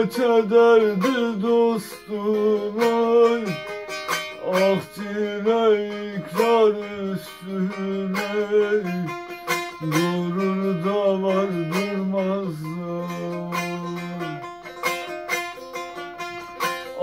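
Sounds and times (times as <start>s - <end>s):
man singing folk melody: 0.0s - 17.0s
small lute strummed: 0.0s - 17.0s.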